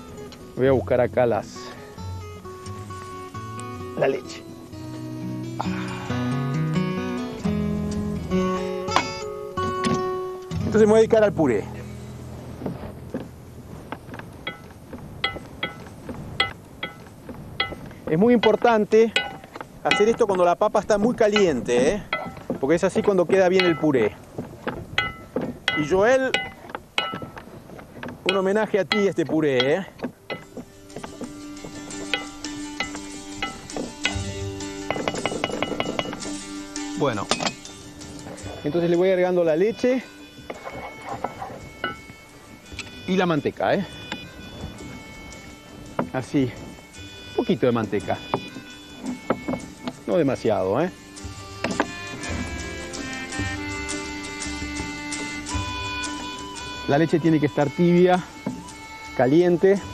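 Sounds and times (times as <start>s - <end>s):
soft background music: 0.0s - 59.9s
metal utensil clinking on pot: 14.4s - 17.8s, 18.4s - 20.3s, 22.1s - 24.0s
wooden spoon knocking metal pot: 14.4s - 27.4s, 28.0s - 36.4s, 48.0s - 50.1s, 51.2s - 53.6s.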